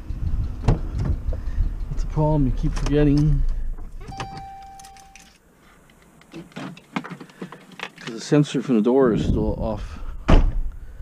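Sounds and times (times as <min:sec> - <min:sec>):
car warning chime beep: 0:04.0 - 0:05.3
clicks and rattles of handling: 0:04.8 - 0:08.2.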